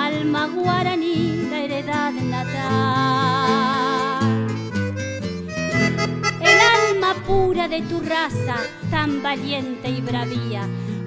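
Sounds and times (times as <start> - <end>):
accordion melody with vibrato: 0.9 - 11.0
guitar chords: 2.4 - 11.0.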